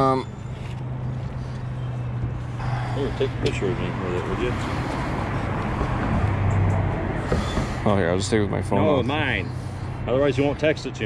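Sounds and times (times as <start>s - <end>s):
outdoor traffic noise: 0.0s - 11.0s
vehicle engine humming: 0.0s - 11.0s.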